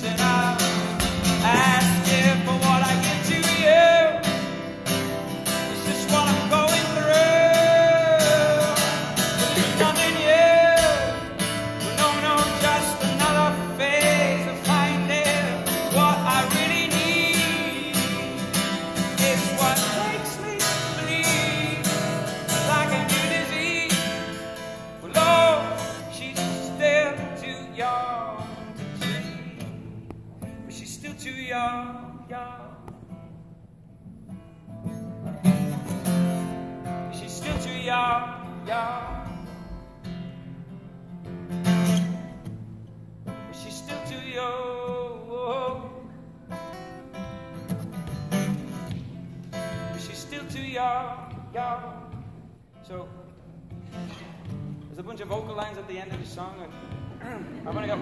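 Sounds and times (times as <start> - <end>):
man singing: 0.0 - 33.1, 36.8 - 39.8, 43.4 - 46.3, 49.7 - 53.4
acoustic guitar: 0.0 - 58.0.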